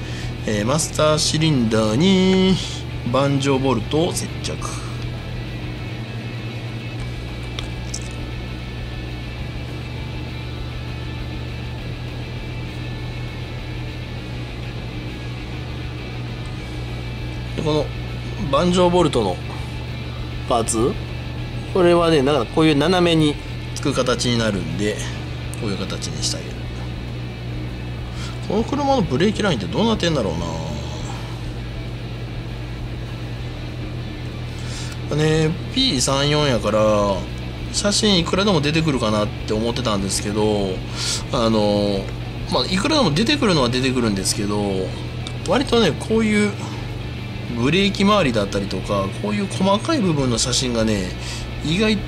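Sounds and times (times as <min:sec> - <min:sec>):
soft background music: 0:00.0 - 0:52.0
steady low hum: 0:00.0 - 0:52.0.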